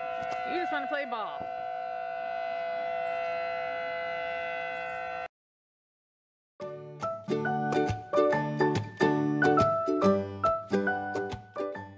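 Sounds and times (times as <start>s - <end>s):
warning siren steady tone: 0.0s - 5.3s.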